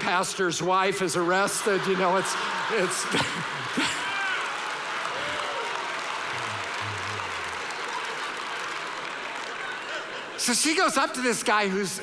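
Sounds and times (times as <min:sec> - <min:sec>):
audience laughing: 0:01.2 - 0:04.2, 0:09.4 - 0:10.9
audience applauding: 0:01.2 - 0:11.2.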